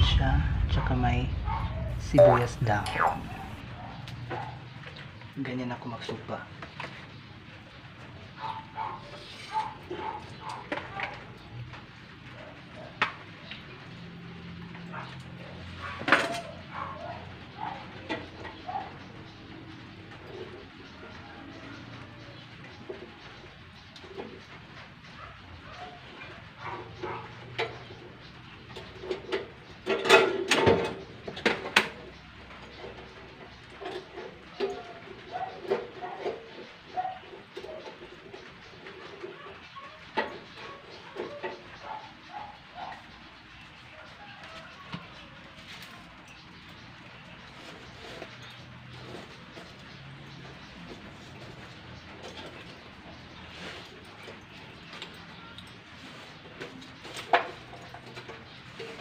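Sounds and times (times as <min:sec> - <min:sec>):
birds cooing: 0:01.3 - 0:05.0, 0:31.0 - 0:59.0
wire baskets clinking on grill: 0:07.8 - 0:59.0.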